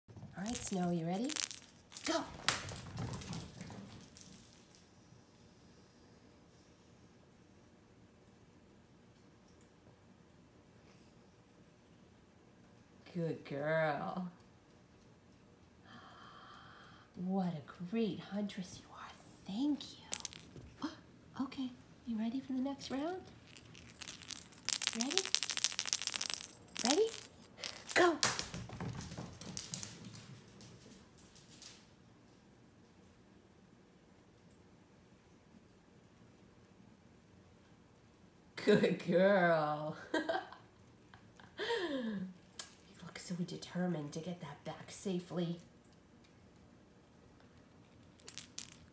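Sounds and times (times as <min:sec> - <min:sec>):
cat toy jingling and rattling: 0:00.4 - 0:02.2, 0:22.8 - 0:28.0.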